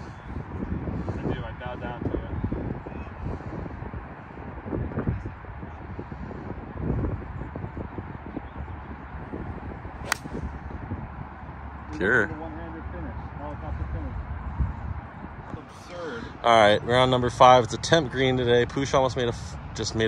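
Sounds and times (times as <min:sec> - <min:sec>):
wind noise on microphone: 0:00.0 - 0:12.2, 0:13.7 - 0:16.4.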